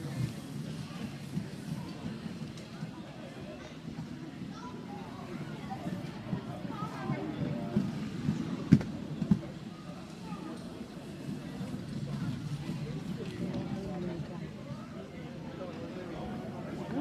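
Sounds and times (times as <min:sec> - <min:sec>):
skate wheels rolling on wood: 0:00.0 - 0:14.8.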